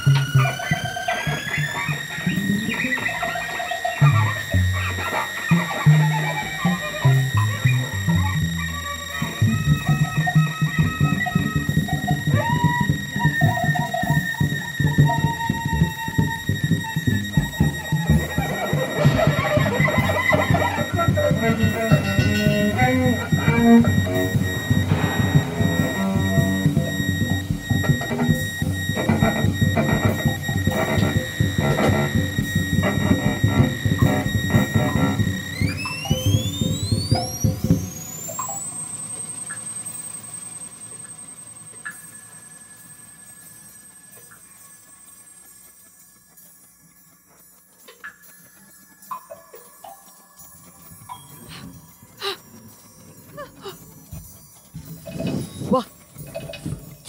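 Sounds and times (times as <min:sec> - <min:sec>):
steady high tones: 0:00.0 - 0:57.0
rising glides: 0:09.4 - 0:43.6.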